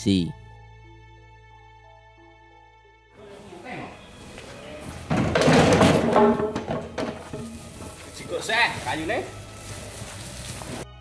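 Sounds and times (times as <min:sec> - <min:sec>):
steady hiss: 0:06.2 - 0:10.9.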